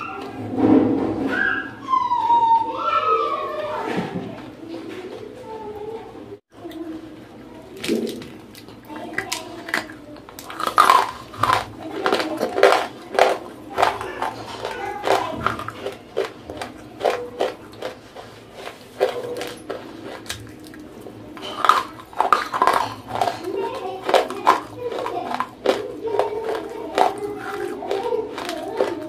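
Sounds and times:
crunchy chewing of clay: 0:06.5 - 0:29.0.

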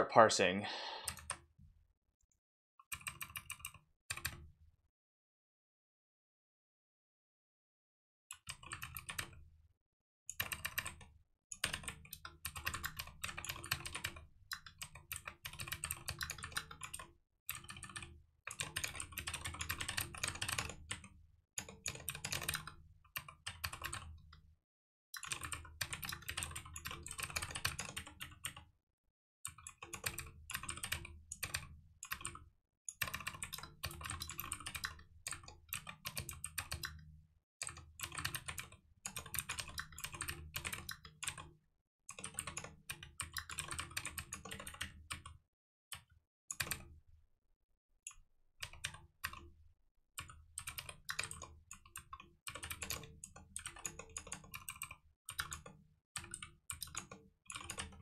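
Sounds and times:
fast typing on computer keyboard: 0:02.9 - 0:04.4, 0:08.3 - 0:09.4, 0:10.3 - 0:24.4, 0:25.2 - 0:28.6, 0:29.5 - 0:46.8, 0:48.6 - 0:49.5, 0:50.2 - 0:58.0.

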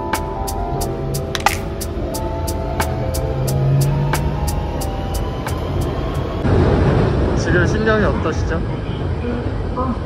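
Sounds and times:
background music with ticking beat: 0:00.0 - 0:06.4
underground train running: 0:00.0 - 0:10.0.

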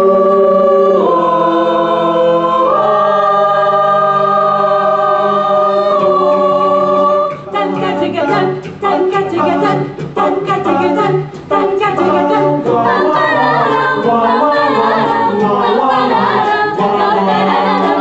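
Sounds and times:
a cappella group singing harmony: 0:00.0 - 0:18.0.

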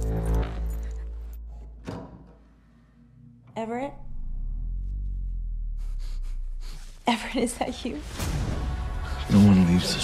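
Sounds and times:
person breathing quickly: 0:05.7 - 0:07.0.

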